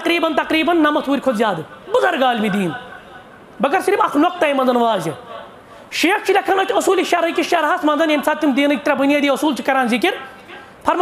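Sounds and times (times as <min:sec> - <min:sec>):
man speaking in a raised voice: 0:00.0 - 0:02.8, 0:03.6 - 0:11.0.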